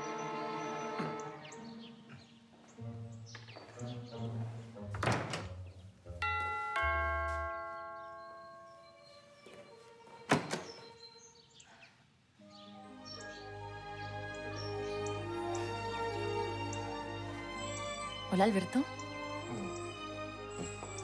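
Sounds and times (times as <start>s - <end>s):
soft background music: 0.0s - 11.7s, 12.4s - 21.0s
two-tone doorbell chime: 6.2s - 9.1s.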